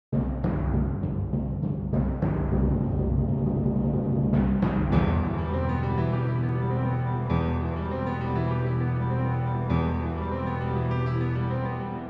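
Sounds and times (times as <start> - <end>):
sharp drum strikes: 0.2 - 5.5
low drum rumble: 0.4 - 6.8
orchestral music: 2.0 - 12.0.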